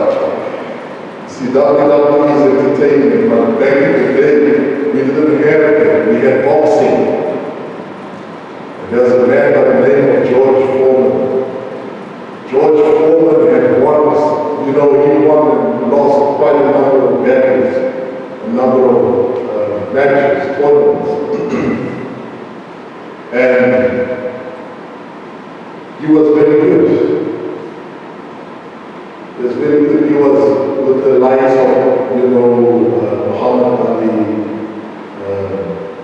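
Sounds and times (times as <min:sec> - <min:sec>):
man preaching: 0:00.0 - 0:07.6, 0:08.8 - 0:11.8, 0:12.4 - 0:22.2, 0:23.3 - 0:24.6, 0:26.0 - 0:27.4, 0:29.4 - 0:35.9
steady room noise hiss: 0:00.0 - 0:36.0
man's voice: 0:01.3 - 0:07.4, 0:08.8 - 0:11.4, 0:12.5 - 0:22.0, 0:23.3 - 0:24.0, 0:29.4 - 0:34.4, 0:35.2 - 0:35.8.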